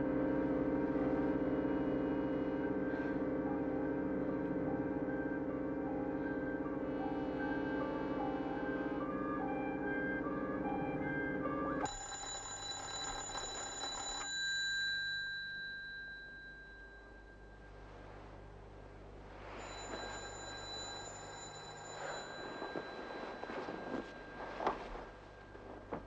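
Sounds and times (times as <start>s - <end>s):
background music: 0.0s - 11.9s
electric bell ringing: 11.8s - 17.8s, 19.5s - 25.8s.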